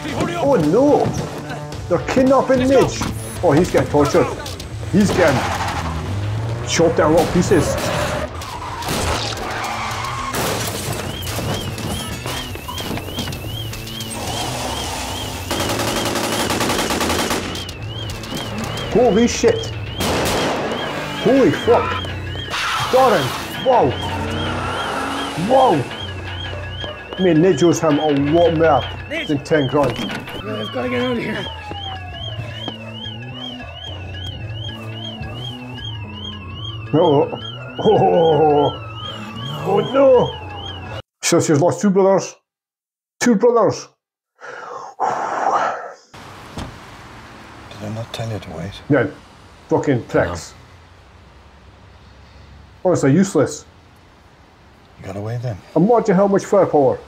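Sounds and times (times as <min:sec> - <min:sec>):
warbling siren tone: 0:09.6 - 0:41.0
gunfire: 0:15.5 - 0:17.7, 0:20.0 - 0:21.1.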